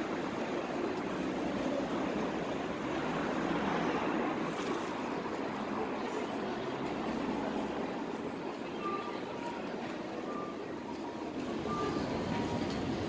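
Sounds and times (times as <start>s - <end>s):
crowd walking: 0.0s - 3.6s, 4.2s - 13.0s
traffic: 0.0s - 13.0s
crossing signal beeps: 8.5s - 13.0s.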